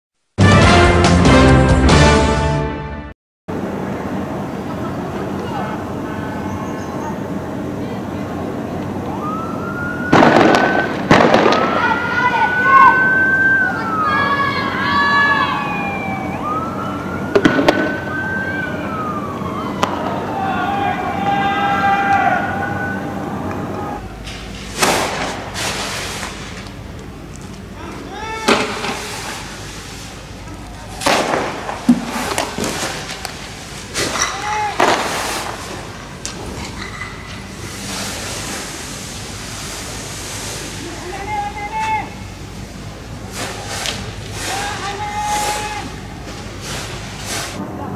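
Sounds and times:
police siren wailing: 0:09.0 - 0:11.0, 0:11.7 - 0:24.2
sharp cracks: 0:10.1 - 0:12.0, 0:24.7 - 0:26.8, 0:31.0 - 0:36.4.

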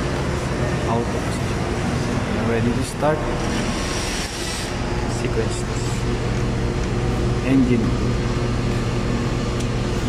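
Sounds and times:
machinery and ventilation hum: 0:00.0 - 0:10.0.

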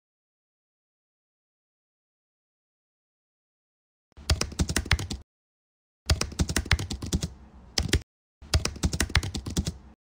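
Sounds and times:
typing on computer keyboard: 0:04.2 - 0:05.2, 0:06.1 - 0:09.9.

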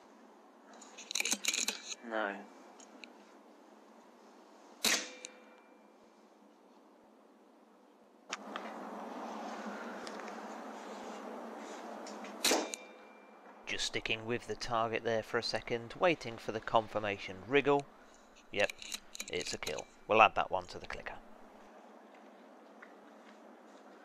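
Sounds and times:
air rifle shot crack: 0:04.8 - 0:05.5, 0:12.4 - 0:12.9.

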